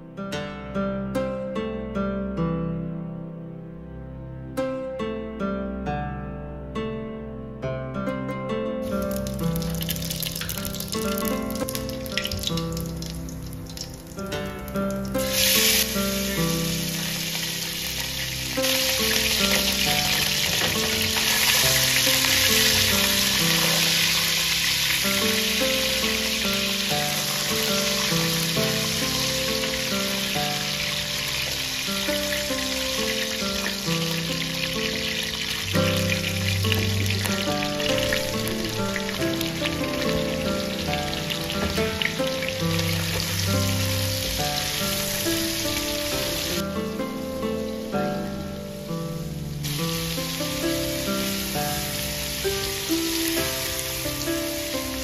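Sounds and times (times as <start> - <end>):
background music: 0.0 - 55.0
fat sizzling in hot oil: 8.8 - 46.6, 47.2 - 55.0.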